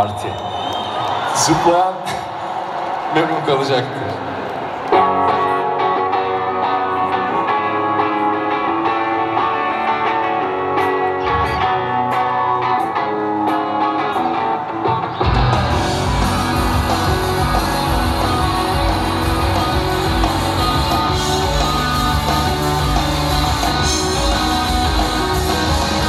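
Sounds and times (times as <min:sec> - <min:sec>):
rock band playing: 0:03.9 - 0:26.0
electric guitar intro: 0:04.9 - 0:26.0.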